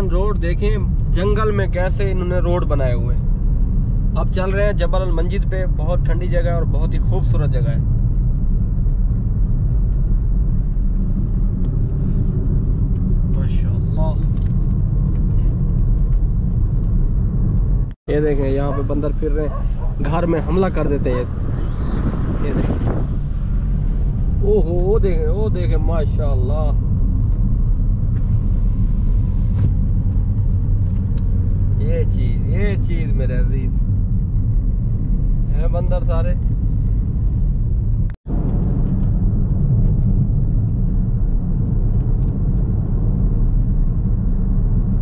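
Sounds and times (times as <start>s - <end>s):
road and engine rumble in car: 0.0s - 45.0s.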